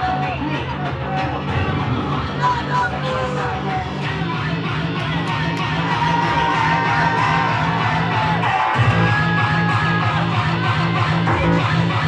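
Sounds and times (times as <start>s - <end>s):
pulsing bass beat: 0.0s - 12.0s.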